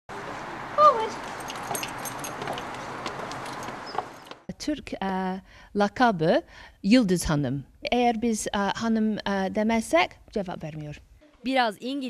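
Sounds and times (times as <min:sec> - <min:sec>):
woman calling a command: 0:00.8 - 0:01.2.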